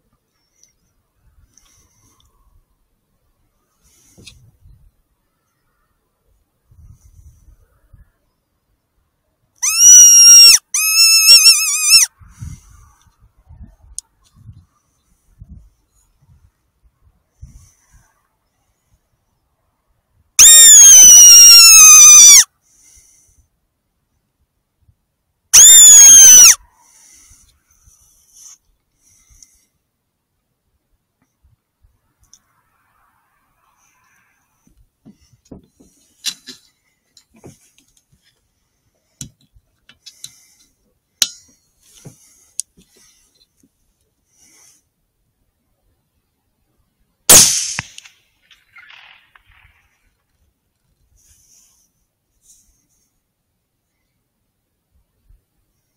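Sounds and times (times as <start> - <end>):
fox call squeal: 9.6 - 12.1, 20.4 - 22.5, 25.6 - 26.6.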